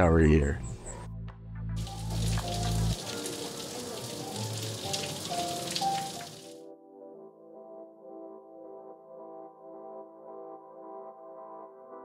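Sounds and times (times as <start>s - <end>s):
background music: 0.0s - 12.0s
shower water splashing on tiles: 1.8s - 6.6s.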